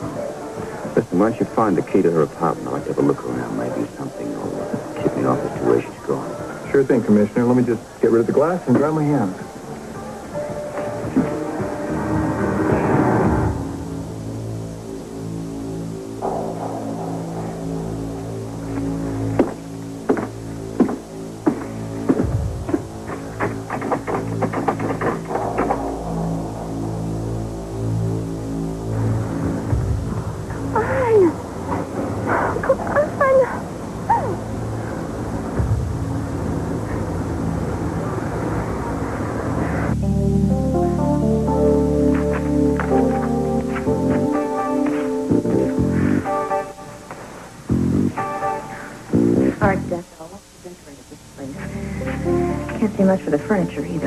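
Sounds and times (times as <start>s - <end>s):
tense background music: 0.0s - 50.0s
low drone: 9.4s - 50.2s, 51.0s - 54.0s.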